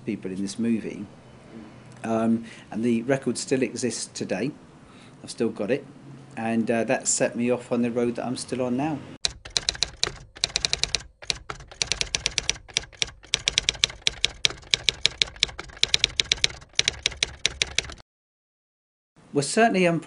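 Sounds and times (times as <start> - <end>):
rapid keyboard typing: 9.2 - 18.0.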